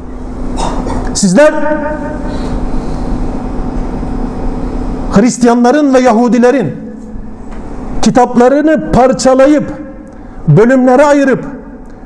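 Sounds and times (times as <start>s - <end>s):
low rumble with hum: 0.0s - 10.6s
person speaking: 0.8s - 2.7s, 8.0s - 11.7s.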